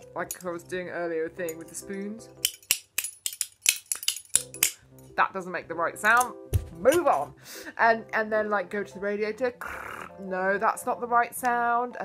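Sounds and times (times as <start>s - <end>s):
metal spoons tapping together: 0.0s - 0.6s, 1.4s - 4.8s, 6.1s - 7.2s.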